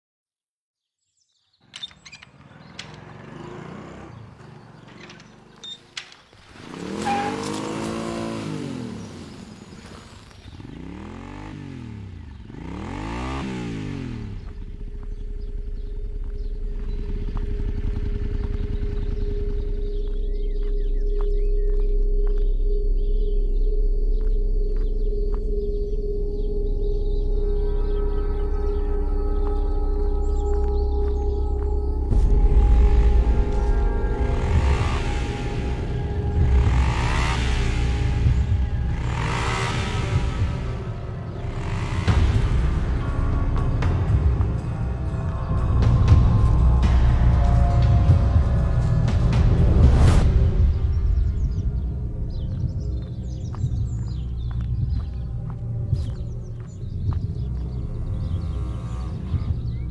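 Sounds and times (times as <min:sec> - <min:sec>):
vehicles passing by: 0:01.7 - 0:59.9
ambient music drone: 0:06.7 - 0:59.9.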